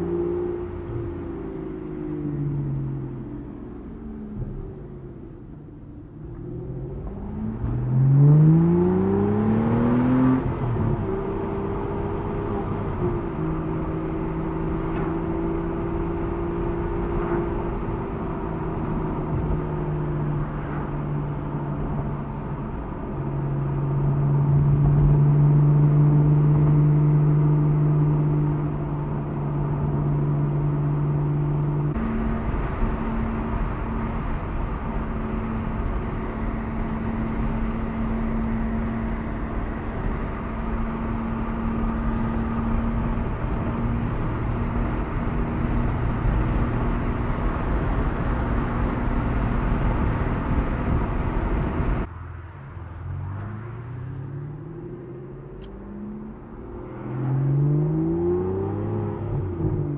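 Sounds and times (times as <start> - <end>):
car engine at part throttle: 0.0 - 59.9
road and wind noise: 0.0 - 59.9.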